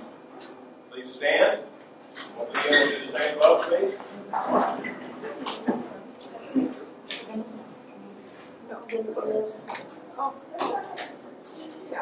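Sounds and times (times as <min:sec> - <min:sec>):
people talking indistinctly: 0:00.9 - 0:12.0.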